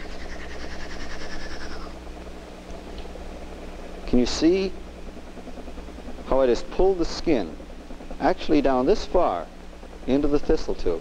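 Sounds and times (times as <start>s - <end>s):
air hissing through tube: 0.0s - 1.9s
vacuum pump humming: 0.0s - 11.0s.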